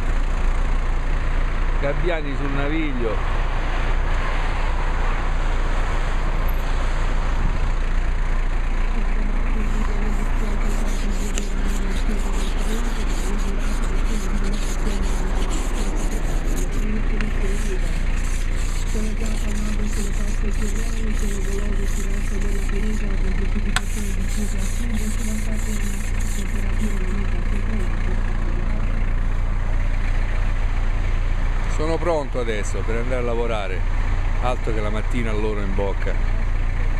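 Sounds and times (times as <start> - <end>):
steady low rumble: 0.0 - 36.9
ice scraper rasping on glass: 9.7 - 23.1, 23.8 - 27.1.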